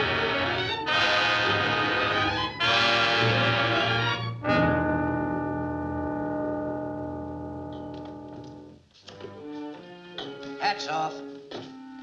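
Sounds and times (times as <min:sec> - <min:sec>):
held orchestral chord with brass: 0:00.0 - 0:08.7.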